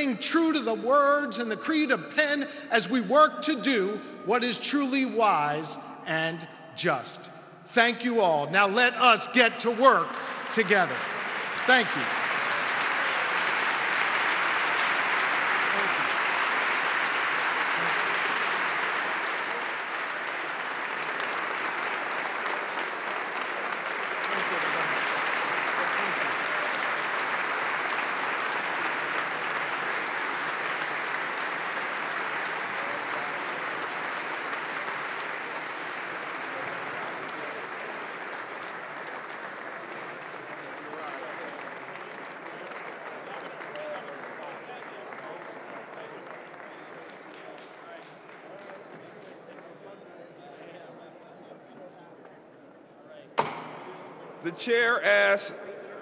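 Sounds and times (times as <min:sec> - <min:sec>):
audience applause: 0:08.8 - 0:49.9.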